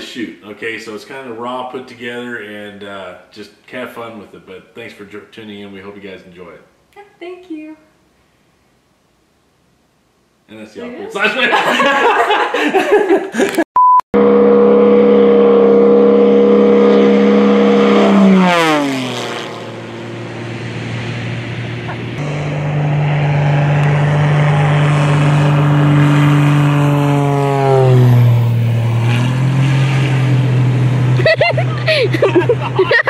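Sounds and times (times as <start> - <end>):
propeller airplane passing: 14.2 - 33.0.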